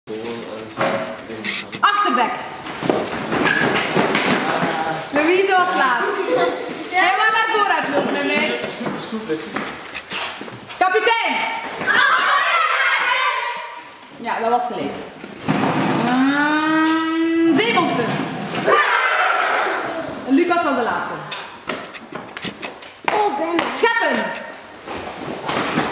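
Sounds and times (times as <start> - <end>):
footsteps on concrete floor: 7.8 - 10.8, 21.6 - 25.9
children shouting excitedly: 11.8 - 13.9, 18.6 - 20.3.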